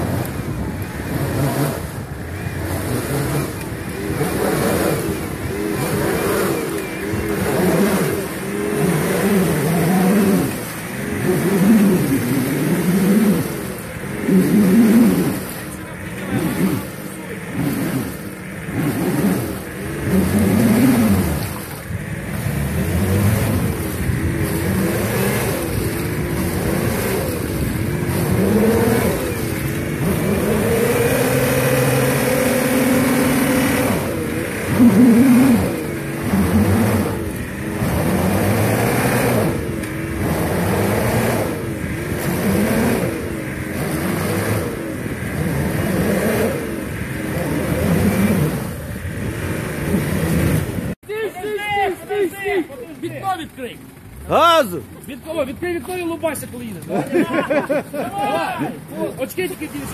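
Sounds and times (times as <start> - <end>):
suv engine revving: 0.0 - 51.0, 51.7 - 59.9.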